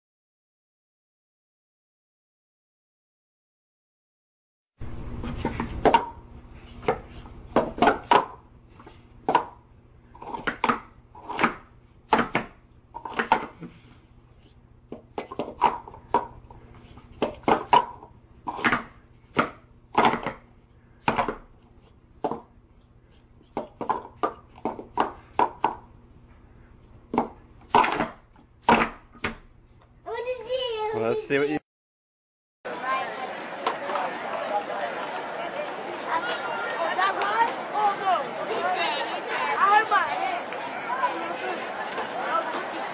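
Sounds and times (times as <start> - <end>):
plastic cups clacking: 17.2 - 20.4, 23.5 - 25.9.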